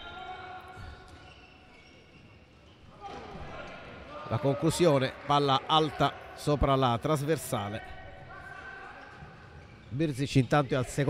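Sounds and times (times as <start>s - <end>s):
players running on court floor: 8.1s - 11.0s.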